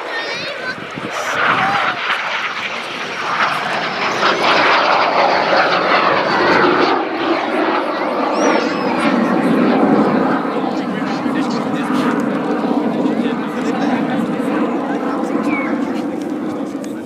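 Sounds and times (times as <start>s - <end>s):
jet rushing noise: 0.0s - 16.7s.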